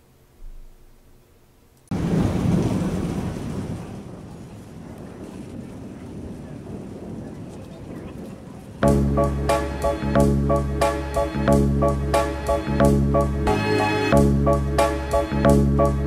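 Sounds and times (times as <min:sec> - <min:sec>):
rain falling: 0:01.8 - 0:11.8
thunder rumbling: 0:01.9 - 0:13.5.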